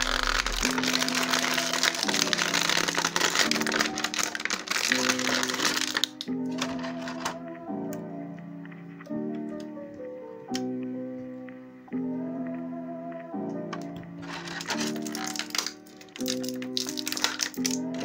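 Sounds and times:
plastic bag crinkling: 0:00.0 - 0:07.4, 0:14.2 - 0:18.0
soft background music: 0:00.0 - 0:18.0.

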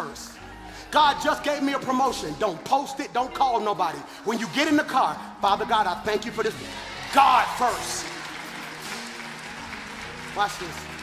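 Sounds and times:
congregation applauding: 0:06.5 - 0:11.0.

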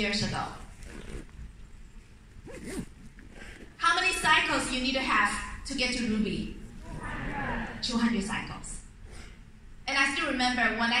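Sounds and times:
low rumble of large hall: 0:00.0 - 0:11.0.

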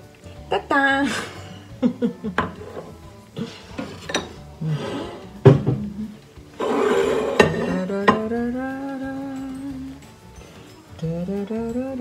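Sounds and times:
woman humming: 0:04.6 - 0:06.3.

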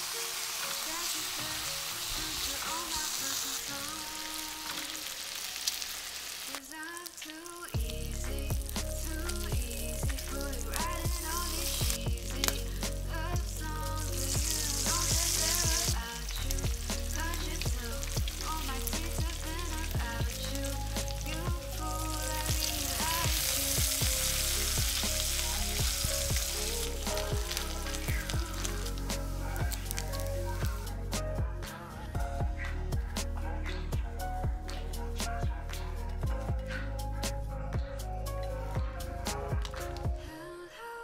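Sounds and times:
bacon sizzling and popping: 0:00.0 - 0:31.0
background music with bass: 0:07.8 - 0:40.4.

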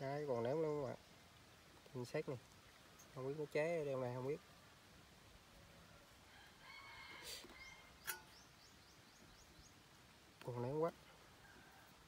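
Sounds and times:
distant chicken call: 0:05.8 - 0:08.4.

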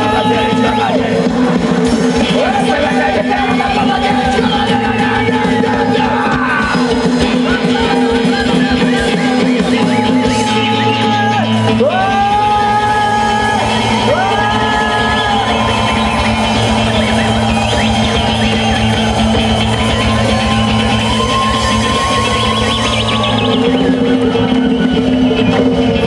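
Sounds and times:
live folk-rock band playing: 0:00.0 - 0:26.0
high sliding melody line: 0:12.9 - 0:26.0.

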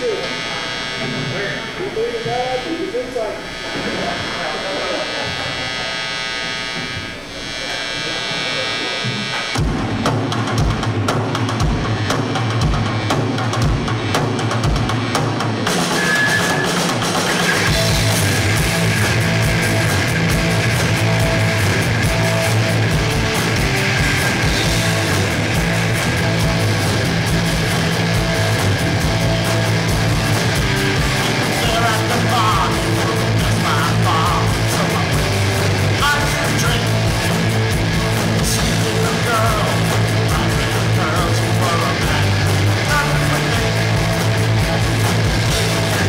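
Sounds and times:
loud rock band playing: 0:00.0 - 0:07.6, 0:08.4 - 0:46.0
held amplified tones: 0:00.0 - 0:46.0.

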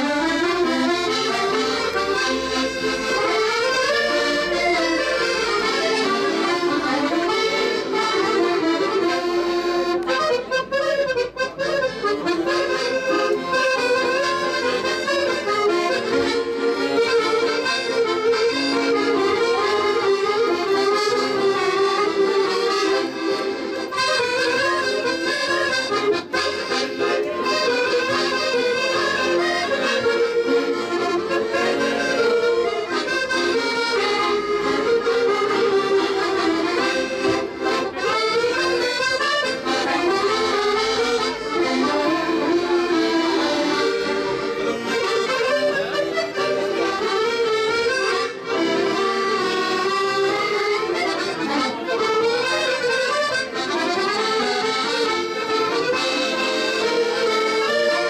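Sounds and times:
button accordions playing lively tune: 0:00.0 - 0:58.0.

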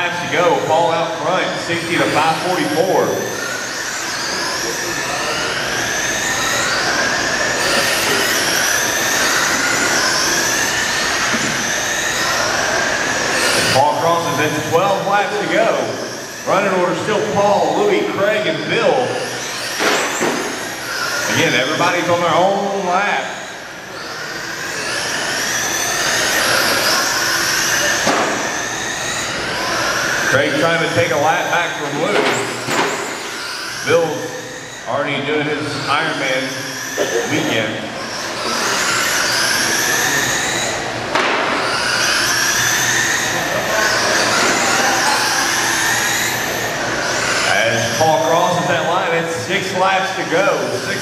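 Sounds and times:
people talking: 0:00.0 - 0:03.5, 0:13.4 - 0:19.2, 0:21.2 - 0:23.4, 0:30.1 - 0:32.5, 0:33.8 - 0:38.1, 0:47.3 - 0:51.0
rc trucks motor whine: 0:00.0 - 0:51.0.

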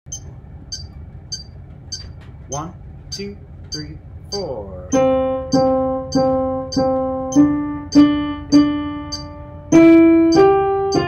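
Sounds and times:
metronome beeping: 0:00.1 - 0:11.0.

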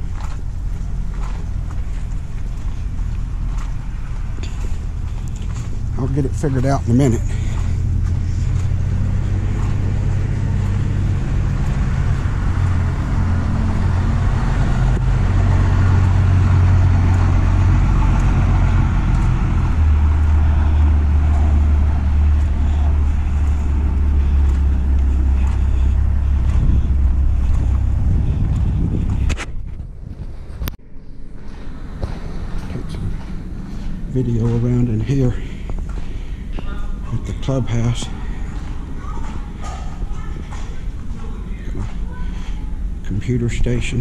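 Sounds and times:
rushing noise: 0:00.0 - 0:43.0
machinery droning hum: 0:00.0 - 0:44.0.

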